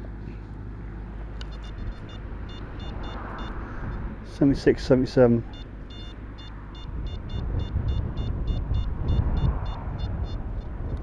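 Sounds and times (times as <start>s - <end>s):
metal detector beeps: 1.4s - 3.6s, 5.5s - 10.7s
wind rumble on microphone: 1.5s - 11.0s.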